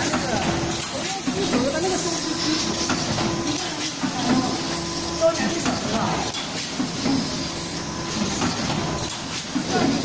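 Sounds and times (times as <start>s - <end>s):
packing machine running: 0.0s - 10.0s.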